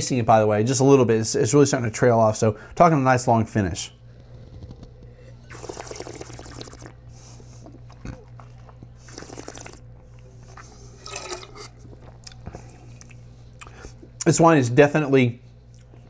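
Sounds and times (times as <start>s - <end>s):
steady low hum: 0.0s - 16.0s
noisy sip from a glass: 5.0s - 13.9s.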